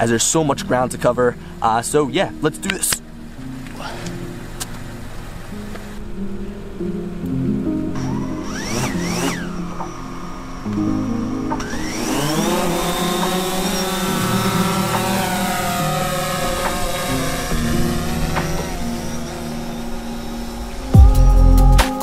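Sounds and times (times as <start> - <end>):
drone motors whining: 7.9 - 21.8.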